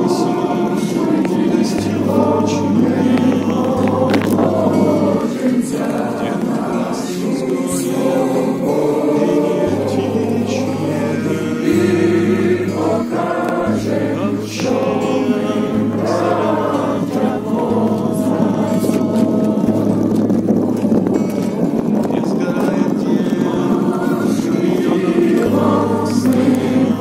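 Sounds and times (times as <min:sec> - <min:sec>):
crowd singing in chorus: 0:00.0 - 0:27.0.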